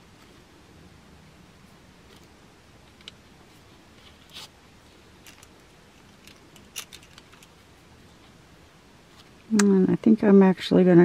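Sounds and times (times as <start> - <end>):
light handling noise: 2.0 - 8.4.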